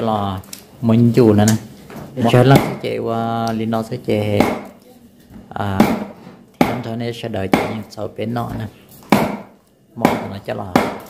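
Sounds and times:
knife chopping on wooden board: 4.4s - 4.8s, 5.8s - 6.9s, 7.5s - 7.8s, 9.0s - 11.0s.

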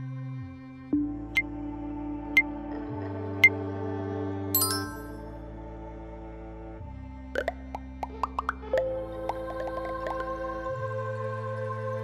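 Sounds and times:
synth background music: 4.6s - 12.0s
cartoon pop bloops sliding up: 7.4s - 10.2s.

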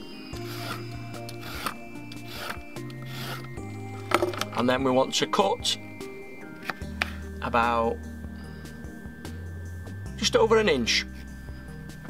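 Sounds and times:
peeler scraping carrot skin: 0.4s - 3.6s.

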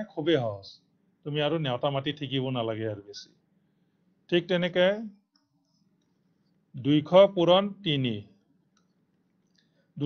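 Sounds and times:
man speaking: 0.0s - 3.3s, 4.3s - 5.2s, 6.8s - 8.3s.

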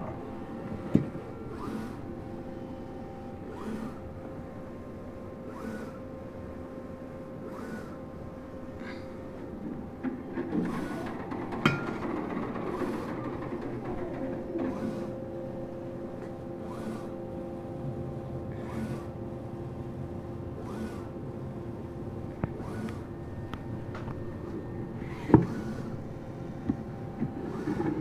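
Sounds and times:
print carriage swish and whine: 0.0s - 28.0s
printer hum: 0.0s - 28.0s.

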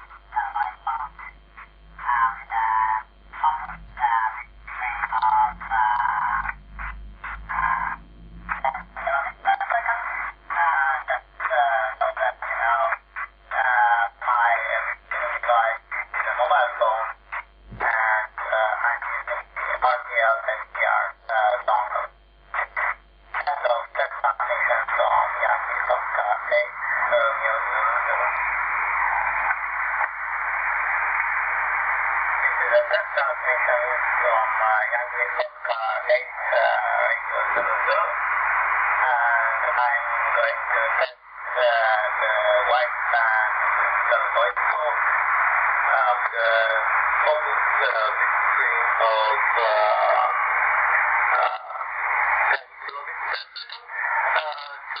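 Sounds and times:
radio speech through phone speaker: 0.0s - 55.0s
rough radio noise: 0.0s - 55.0s.

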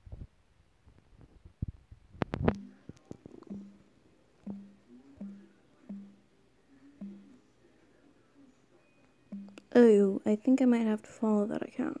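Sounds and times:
fingers tapping on phone: 2.2s - 6.3s, 6.9s - 7.4s, 9.3s - 9.7s.

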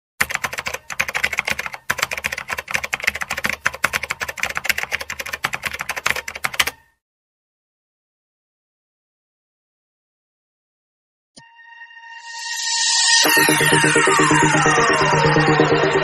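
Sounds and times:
keystroke clicks: 0.2s - 6.8s.

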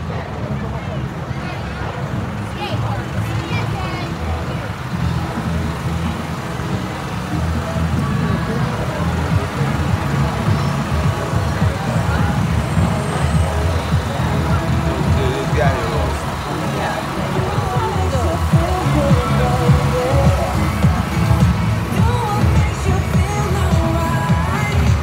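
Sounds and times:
music: 0.0s - 25.0s
tractor engine rumbling: 0.0s - 25.0s
voices: 0.0s - 25.0s.

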